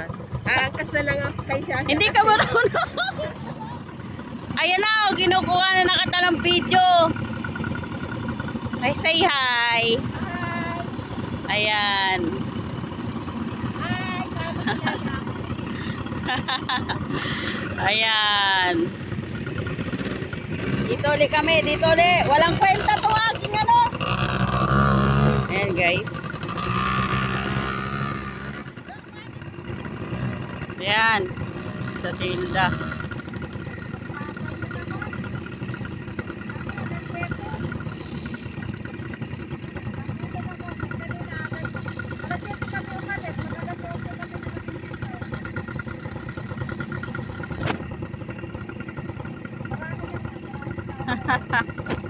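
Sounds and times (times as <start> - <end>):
small engine rough rumble: 0.0 - 52.0.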